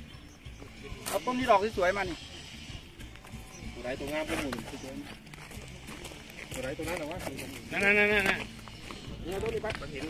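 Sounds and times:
people talking: 9.1s - 10.0s.

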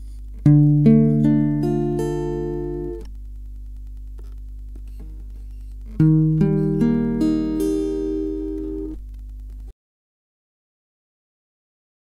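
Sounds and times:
faint low hum: 0.0s - 9.7s
acoustic guitar chord ringing: 0.4s - 3.1s, 6.0s - 9.0s.

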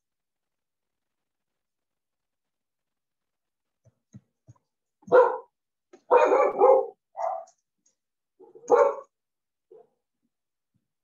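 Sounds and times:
dog barking: 5.0s - 7.6s, 8.4s - 10.0s.

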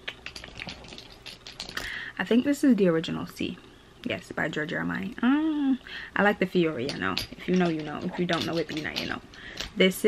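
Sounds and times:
glass bottles clicking together: 0.1s - 2.0s, 6.7s - 9.8s.

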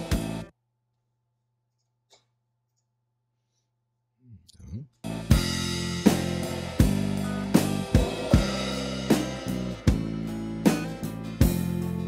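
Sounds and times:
murmured voice: 7.0s - 9.3s.

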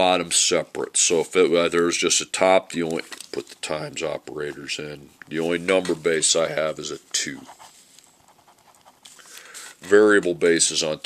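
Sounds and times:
person speaking: 0.0s - 11.0s
pencil writing on paper: 7.4s - 9.2s
soft breath drawn in: 9.1s - 9.8s.

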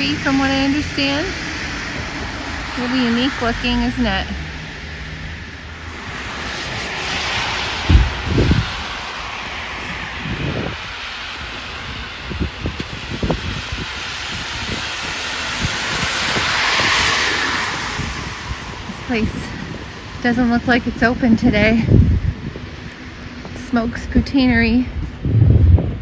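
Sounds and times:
cars passing on wet street: 0.0s - 26.0s
wind thumping on microphone: 5.8s - 26.0s.

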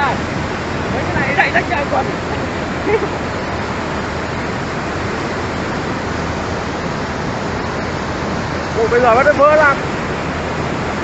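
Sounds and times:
floodwater rushing: 0.0s - 11.0s.

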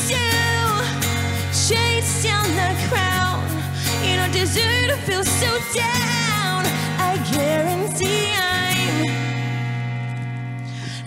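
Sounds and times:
person singing: 0.0s - 9.4s
acoustic guitar chords: 0.0s - 11.0s.

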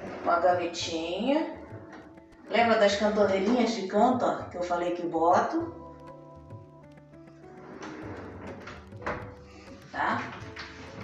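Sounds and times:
background music with sustained tones: 0.0s - 11.0s.

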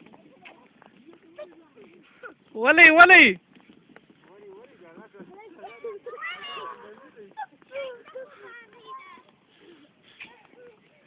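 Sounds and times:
people shouting and squealing: 5.4s - 11.0s.

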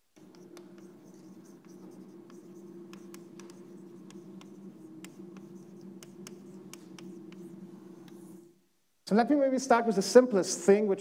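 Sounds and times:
steady low hum: 0.0s - 10.3s
chalk writing on a blackboard: 0.2s - 8.5s.

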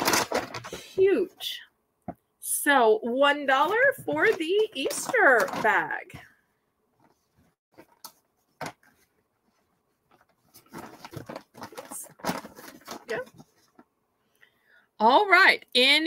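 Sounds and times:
fabric bag crinkling and rustling: 4.2s - 6.1s, 10.0s - 13.9s.

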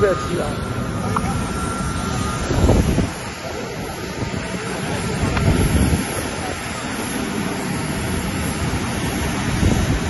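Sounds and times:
jet aircraft noise: 0.0s - 10.0s
wind buffeting microphone: 0.6s - 10.0s.

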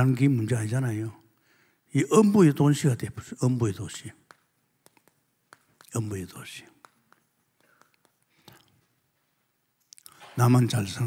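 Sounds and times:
chalk ticking on chalkboard: 3.8s - 8.7s.

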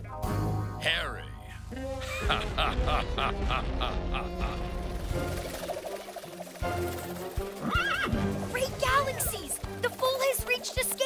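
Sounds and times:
background music: 0.0s - 11.0s
cartoon foal whinnying: 7.6s - 8.2s.

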